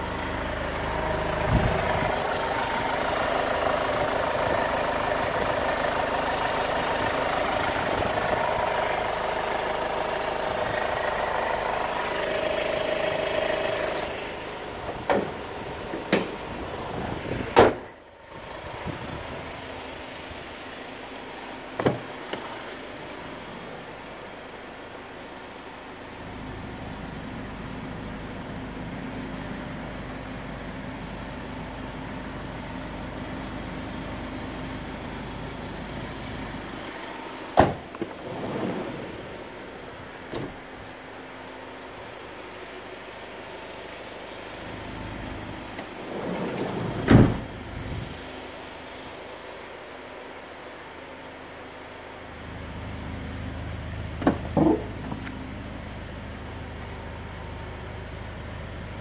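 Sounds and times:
van door shutting thump: 17.5s - 17.9s, 21.8s - 22.2s, 37.6s - 38.1s, 40.3s - 40.6s, 46.9s - 47.5s, 54.2s - 55.2s.

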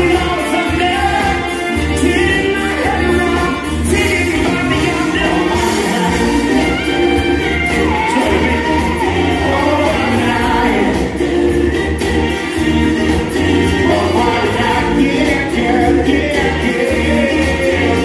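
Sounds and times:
man singing into a microphone: 0.0s - 6.8s, 7.9s - 11.2s, 13.8s - 18.0s
loud pop backing track: 0.0s - 18.0s.

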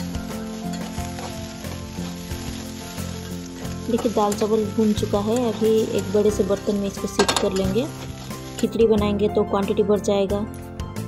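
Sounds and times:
metal spatula stirring: 0.0s - 9.1s
food sizzling in oil: 0.0s - 9.9s
faint background music: 0.0s - 11.0s.

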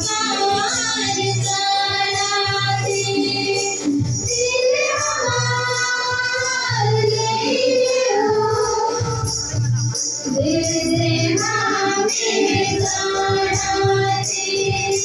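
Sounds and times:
voices singing long notes: 0.0s - 9.3s, 10.4s - 15.0s
instrumental accompaniment: 0.0s - 15.0s.

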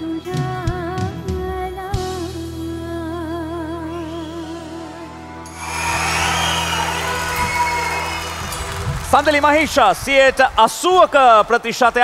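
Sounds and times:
audience applause: 5.5s - 11.6s.

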